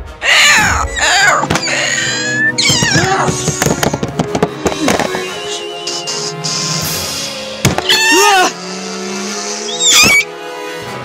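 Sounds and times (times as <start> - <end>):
background music: 0.0 - 11.0
shrill creature screeches: 0.2 - 3.3, 7.9 - 10.3.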